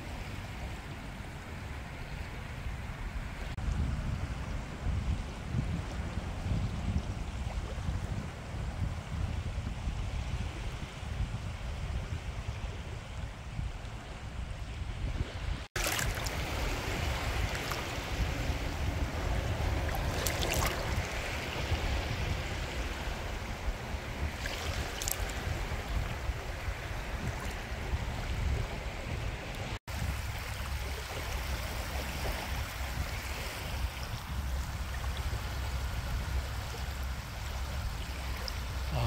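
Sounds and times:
small waves lapping on shore: 0.0s - 39.0s
wind rumbling on microphone: 0.0s - 39.0s.

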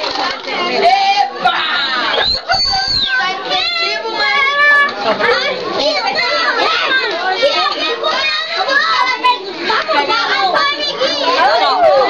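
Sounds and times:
young children talking: 0.0s - 12.0s.

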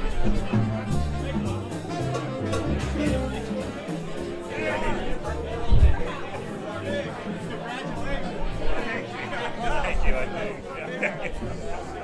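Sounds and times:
background music: 0.0s - 12.0s
people talking at once: 0.0s - 12.0s.

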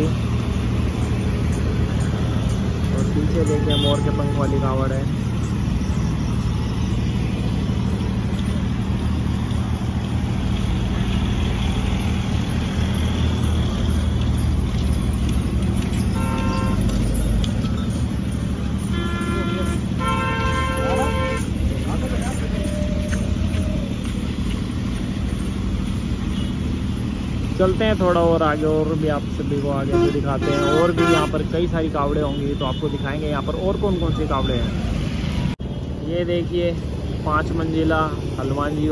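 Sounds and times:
road traffic rumble: 0.0s - 38.9s
vehicle horns honking: 3.0s - 5.2s, 16.0s - 17.2s, 18.7s - 21.8s, 29.8s - 31.6s.

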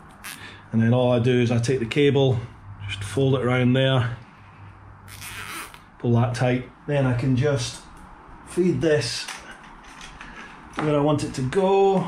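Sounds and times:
cable tie zipping tight: 0.0s - 0.5s, 5.1s - 5.9s
handling of wires: 9.2s - 10.9s.

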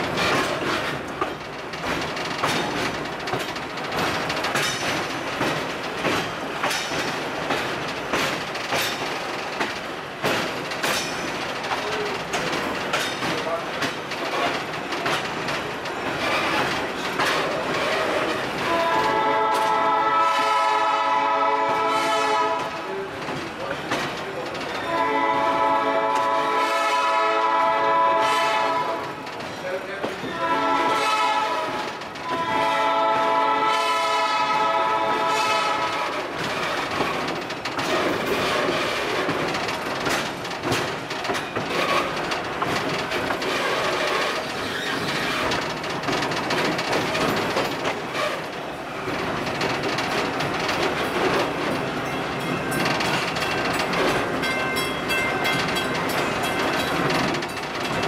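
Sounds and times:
train wheels clicking over rail joints: 0.0s - 58.0s
locomotive air horn blasts: 18.6s - 22.8s, 24.9s - 29.0s, 30.3s - 36.1s.

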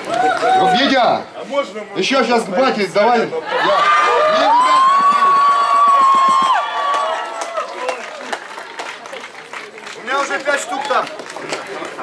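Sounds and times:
crowd noise: 0.0s - 12.0s
men shouting a cheer: 3.5s - 8.0s
scattered clapping: 4.8s - 12.0s.

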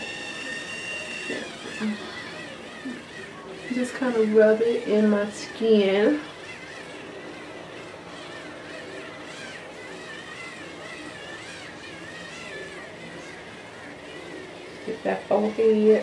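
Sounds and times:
facial brush whirring: 0.0s - 16.0s.

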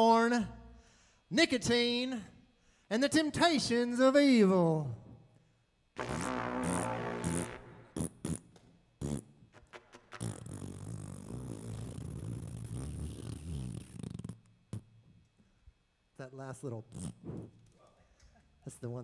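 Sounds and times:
long low buzzing: 6.0s - 8.0s
man making mouth sound effects: 6.0s - 15.0s, 16.8s - 17.6s.

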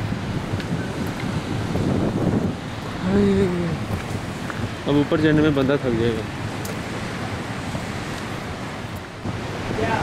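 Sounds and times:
ocean surf breaking: 0.0s - 10.0s
wind buffeting microphone: 0.0s - 10.0s.

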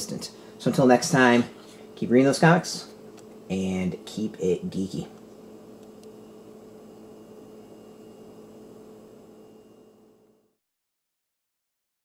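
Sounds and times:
low hum with hiss: 0.0s - 10.6s.

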